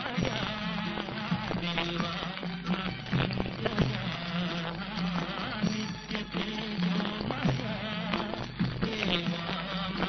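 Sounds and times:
instrumental accompaniment: 0:00.0 - 0:10.0
man singing: 0:00.0 - 0:10.0.

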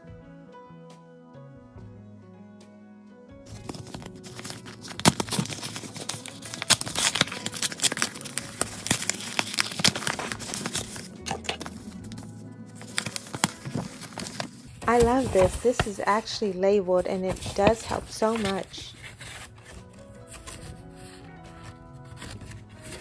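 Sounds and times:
background music: 0:00.0 - 0:23.0
paper crinkling and rustling: 0:03.5 - 0:23.0.

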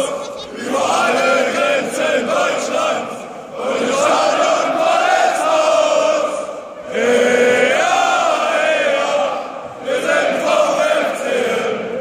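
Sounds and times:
crowd chanting in echoing hall: 0:00.0 - 0:12.0.

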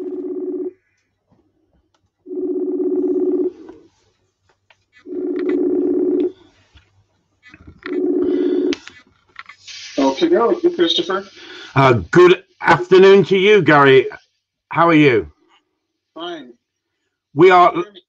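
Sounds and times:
phone ringing tone: 0:00.0 - 0:00.8, 0:02.3 - 0:03.8, 0:05.0 - 0:06.5, 0:07.8 - 0:08.9.

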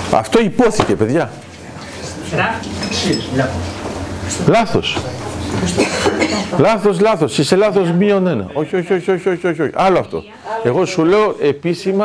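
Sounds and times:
tableware clinking: 0:02.7 - 0:03.5, 0:04.9 - 0:06.6
person speaking: 0:04.3 - 0:12.0.

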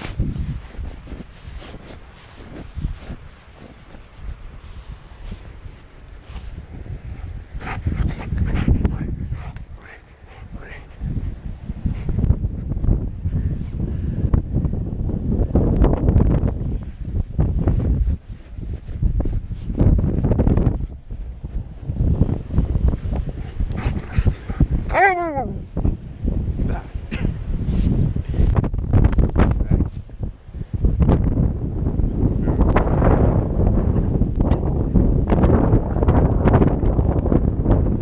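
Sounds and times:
hands digging in snow: 0:00.0 - 0:12.3, 0:16.5 - 0:25.9, 0:26.6 - 0:30.1
snow crunching against camera: 0:00.0 - 0:13.8, 0:15.8 - 0:31.3
dog whining: 0:24.9 - 0:25.6.

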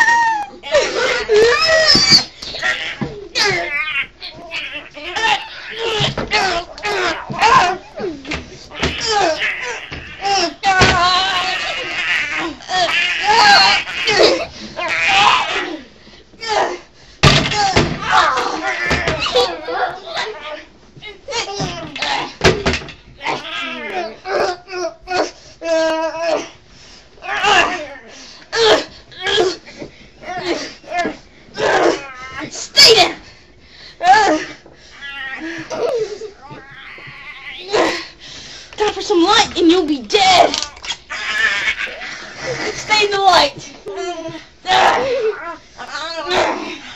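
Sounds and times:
person speaking: 0:38.8 - 0:40.8.

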